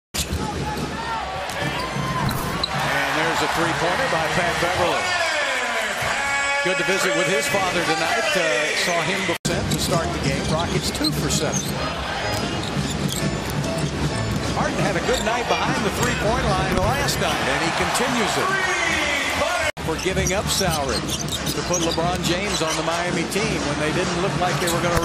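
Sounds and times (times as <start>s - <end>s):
arena crowd noise: 0.2s - 25.0s
sneaker squeaks: 1.6s - 2.8s, 10.2s - 15.4s, 20.0s - 23.0s
music playing: 9.5s - 25.0s.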